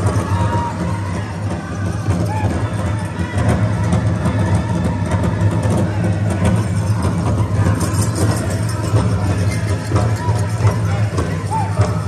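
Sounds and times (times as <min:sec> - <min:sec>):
big drum beaten steadily: 0:00.0 - 0:12.0
jingling ankle bells: 0:06.4 - 0:12.0.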